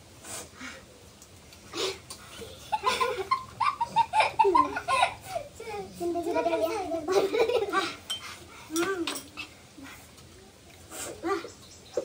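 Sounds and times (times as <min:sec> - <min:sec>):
people eating noodles: 0:00.2 - 0:12.0.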